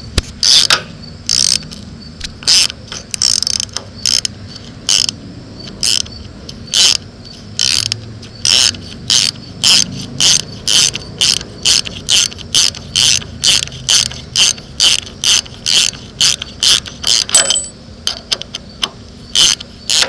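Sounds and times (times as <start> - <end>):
ratchet wrench clicking: 0.2 - 20.0.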